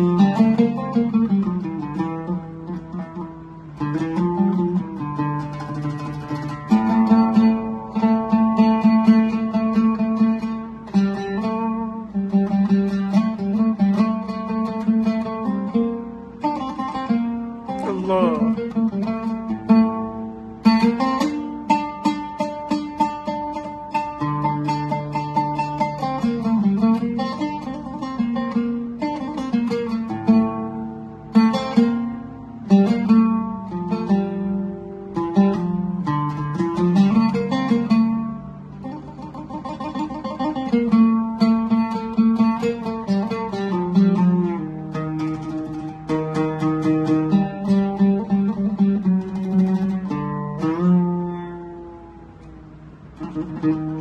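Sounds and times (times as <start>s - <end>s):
solo oud playing: 0.0s - 54.0s.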